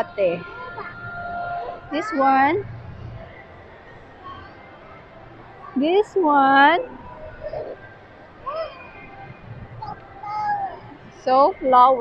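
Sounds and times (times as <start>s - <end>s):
low background din: 0.0s - 12.0s.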